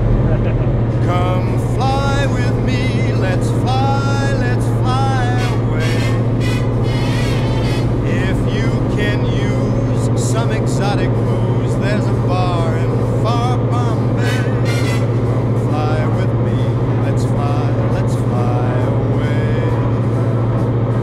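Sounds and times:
propeller aircraft engine drone: 0:00.0 - 0:21.0.

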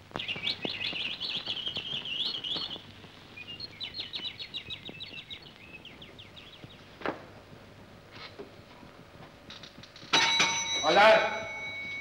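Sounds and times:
small birds chirping: 0:00.0 - 0:07.2.

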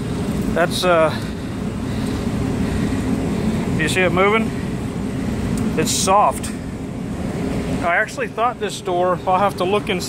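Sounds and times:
air conditioning units humming: 0:00.0 - 0:10.0.

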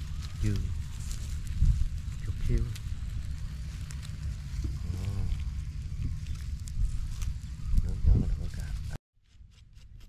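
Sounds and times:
small fire crackling: 0:00.0 - 0:09.0
wind rumbling on microphone: 0:00.0 - 0:09.0
murmured voice: 0:04.6 - 0:05.7.

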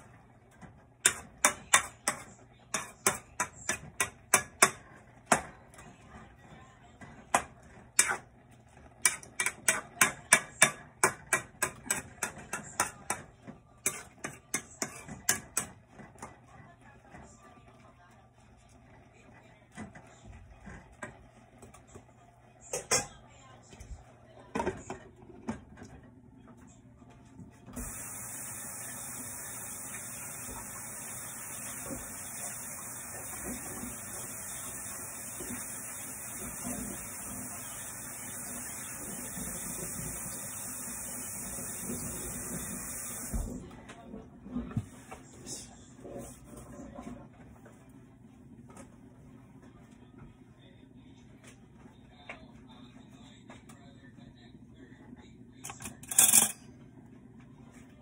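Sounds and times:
tap water running into sink: 0:27.8 - 0:43.6.

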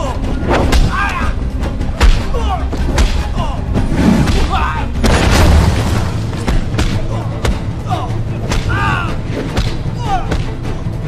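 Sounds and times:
low rumbling film score: 0:00.0 - 0:11.0
deep booming hit: 0:05.0 - 0:06.6
person yelling: 0:07.1 - 0:09.2.

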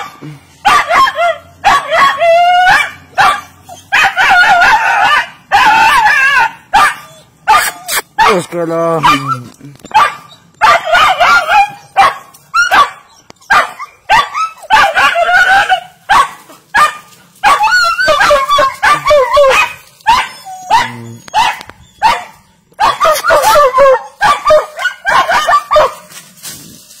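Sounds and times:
dog barking: 0:00.0 - 0:26.1.

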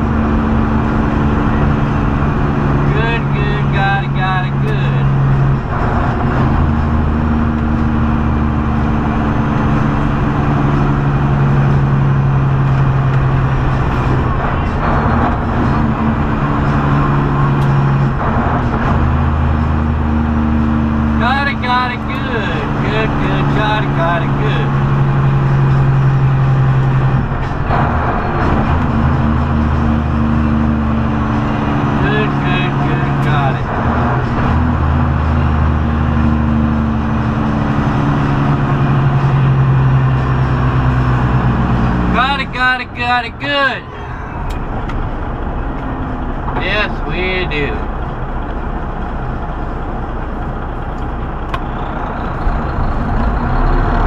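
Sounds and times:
truck engine and road drone: 0:00.0 - 0:54.0
person speaking: 0:42.1 - 0:44.4, 0:46.6 - 0:47.9.

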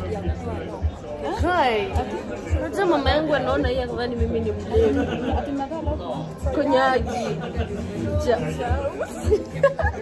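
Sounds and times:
background music with low beat: 0:00.0 - 0:10.0
voices chatting: 0:00.0 - 0:10.0.

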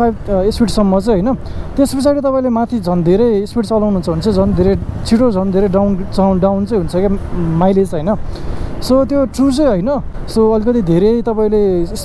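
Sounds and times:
man talking: 0:00.0 - 0:12.0
road noise: 0:00.0 - 0:12.0
scooter engine: 0:03.3 - 0:06.7.

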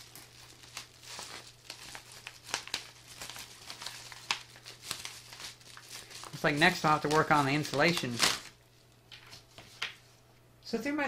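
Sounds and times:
envelope and foil pouch crinkling: 0:00.0 - 0:08.6.

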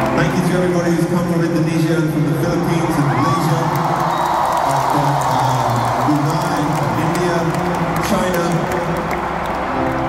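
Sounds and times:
music over stadium pa: 0:00.0 - 0:10.0
crowd cheering and shouting: 0:02.3 - 0:10.0.

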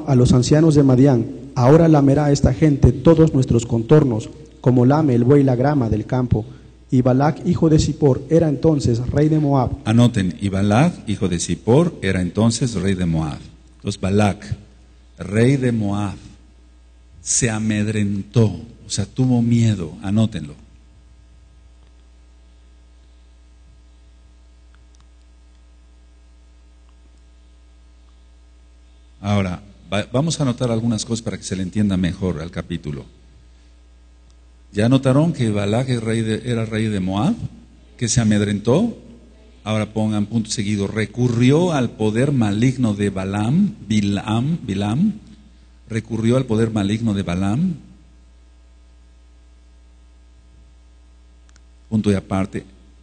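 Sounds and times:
electrical mains hum: 0:00.0 - 0:53.0.

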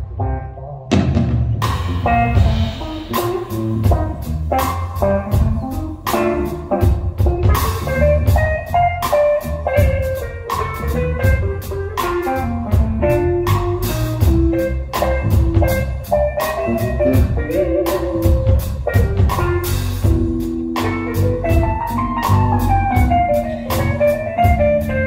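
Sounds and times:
bass guitar: 0:00.0 - 0:25.0
drum kit: 0:00.0 - 0:25.0
keyboard: 0:14.6 - 0:25.0.

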